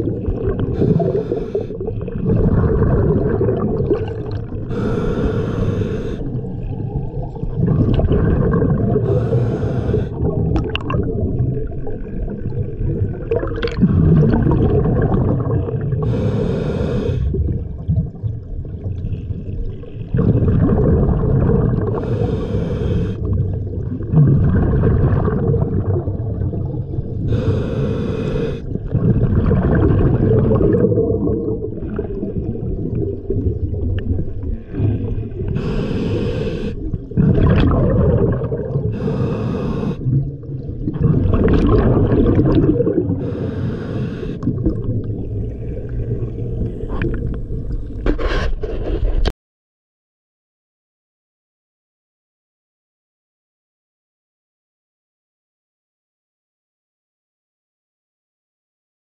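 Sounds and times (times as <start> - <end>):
diver exhaling bubbles: 0.0 - 49.2
low underwater rumble: 6.2 - 16.1, 17.3 - 22.4, 28.7 - 39.3, 40.0 - 43.4, 44.4 - 49.3.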